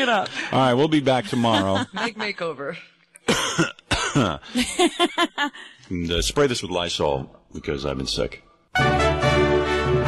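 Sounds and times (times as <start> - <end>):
person coughing: 3.2 - 4.4.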